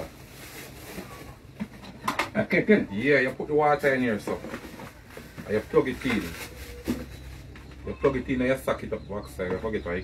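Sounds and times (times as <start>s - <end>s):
plastic bag rustling: 0.0s - 1.6s, 3.8s - 7.5s.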